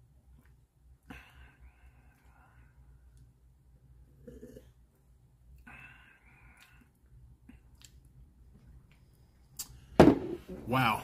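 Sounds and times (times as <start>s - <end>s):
mouth clicks and lip smacks: 7.6s - 8.1s.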